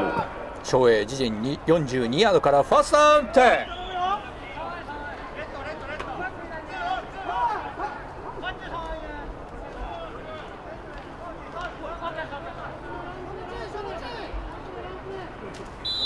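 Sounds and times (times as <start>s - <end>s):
crowd chatter: 0.0s - 16.0s
players shouting: 2.5s - 16.0s.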